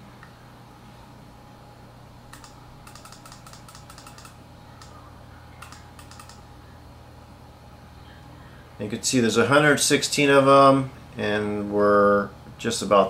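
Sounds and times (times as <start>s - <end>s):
steady low hum: 0.0s - 13.0s
keyboard keys clicking: 2.3s - 5.0s, 5.6s - 6.4s.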